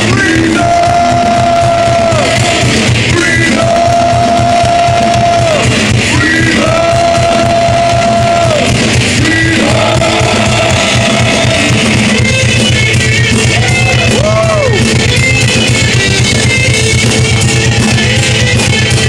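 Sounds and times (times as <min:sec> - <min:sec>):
singer holding long notes: 0:00.0 - 0:15.1
heavy metal band playing live: 0:00.0 - 0:19.0.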